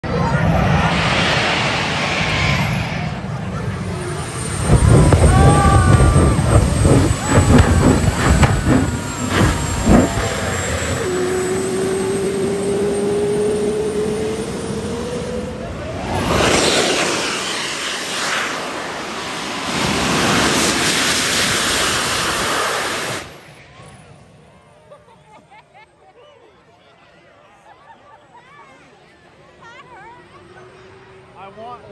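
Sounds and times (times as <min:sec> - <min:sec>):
jet turbine engine whine: 0:00.0 - 0:24.6
jet exhaust rush: 0:00.1 - 0:24.0
rising tone: 0:00.5 - 0:21.5.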